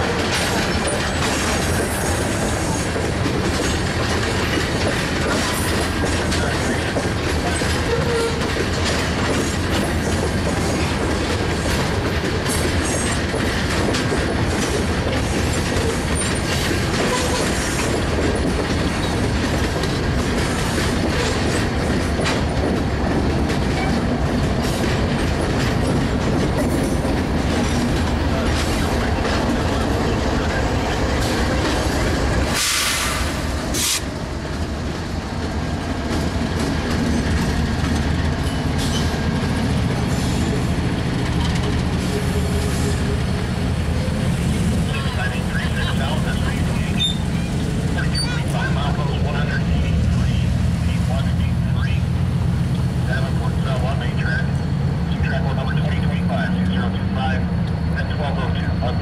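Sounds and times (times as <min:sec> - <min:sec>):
diesel locomotive engine drone: 0:00.0 - 0:59.0
train wheels rumbling and clicking: 0:00.0 - 0:59.0
short hiss: 0:32.5 - 0:34.1.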